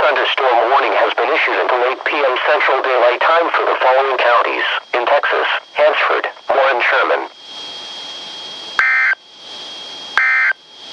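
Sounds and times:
person speaking through radio: 0:00.0 - 0:07.3.

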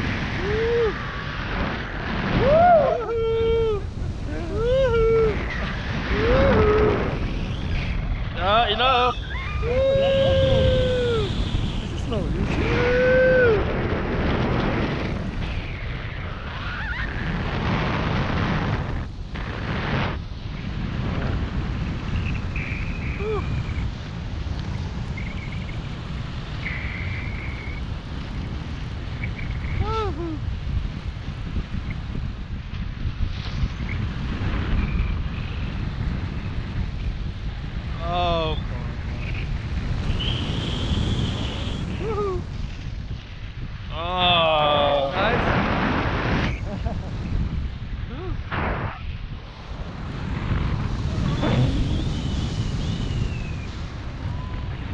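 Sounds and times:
wind buffeting microphone: 0:00.0 - 0:54.9
person whooping and shouting: 0:00.4 - 0:01.0, 0:02.4 - 0:05.5, 0:06.1 - 0:07.0, 0:09.4 - 0:11.3, 0:12.6 - 0:13.7, 0:23.2 - 0:23.5, 0:29.8 - 0:30.4, 0:42.0 - 0:42.5.

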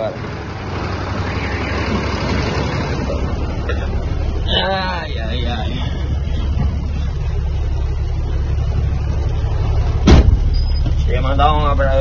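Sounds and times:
engine and road rumble: 0:00.0 - 0:12.0
sharp knock: 0:10.0 - 0:10.5.

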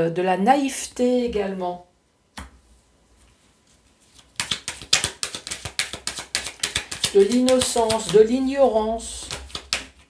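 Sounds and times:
cards being shuffled: 0:04.0 - 0:10.0.

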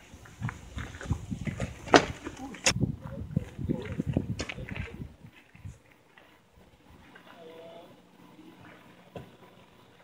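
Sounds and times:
tyre and feet crunching gravel: 0:00.0 - 0:07.6.

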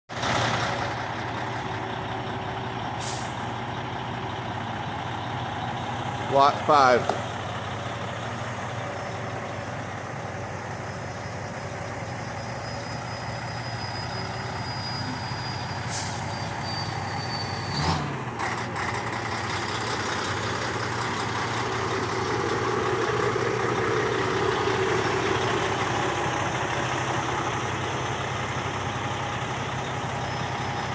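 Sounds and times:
diesel truck engine idling: 0:00.1 - 0:30.9.

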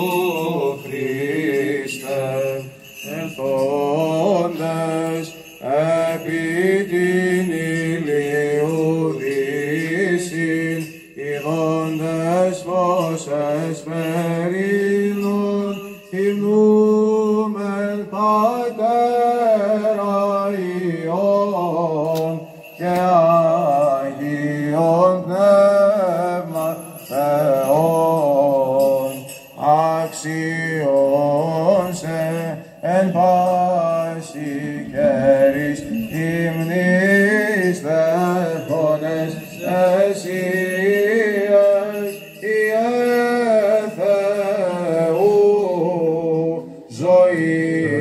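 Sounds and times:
person chanting ornamented notes: 0:26.1 - 0:48.0
low vocal drone: 0:34.4 - 0:36.8, 0:47.8 - 0:48.0.

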